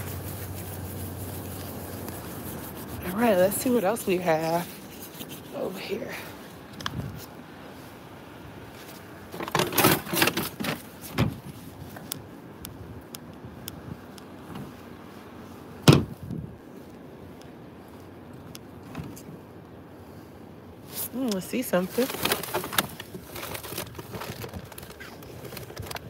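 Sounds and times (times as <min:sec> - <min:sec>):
cardboard and plastic rustling: 0:08.8 - 0:12.1, 0:20.9 - 0:26.0.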